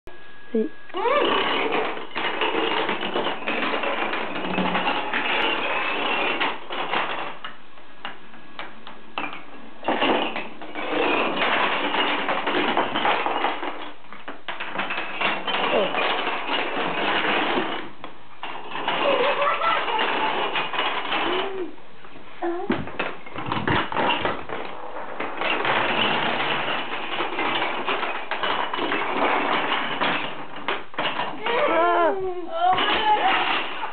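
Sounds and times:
wooden planks toppling on wooden floor: 9.2 - 21.4, 22.7 - 31.8.

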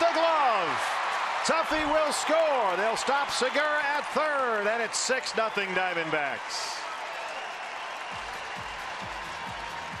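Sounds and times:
ballpark crowd cheering: 0.0 - 10.0.

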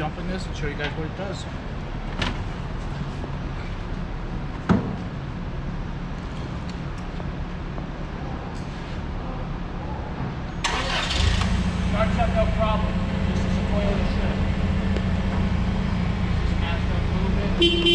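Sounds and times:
forklift engine starting and running: 10.6 - 17.6.

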